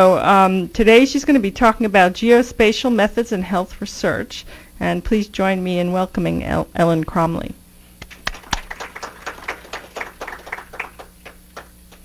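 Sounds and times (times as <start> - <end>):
audience applauding: 8.1 - 12.0.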